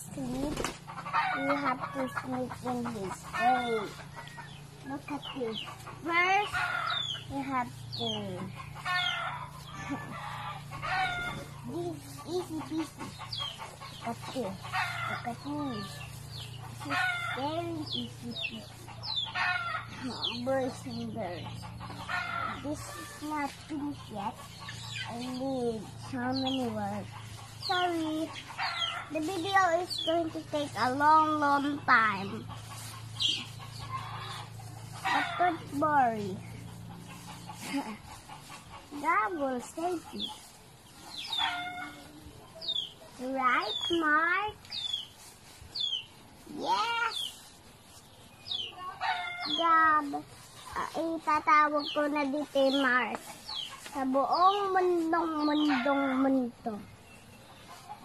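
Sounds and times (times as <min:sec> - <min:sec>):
chickens calling: 0:00.0 - 0:58.0.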